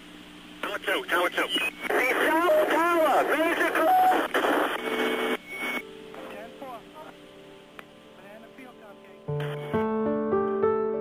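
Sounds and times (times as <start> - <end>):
radio static hiss: 0.5 - 9.8.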